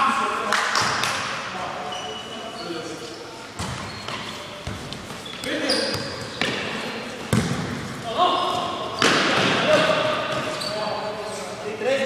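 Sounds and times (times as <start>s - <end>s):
ball thudding on indoor court: 3.6s - 10.6s.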